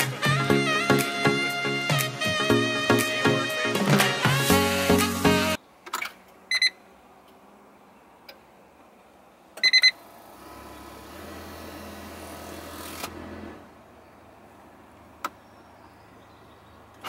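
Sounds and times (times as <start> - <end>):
electronic warning beeps: 6.5 - 6.8, 9.6 - 10.0.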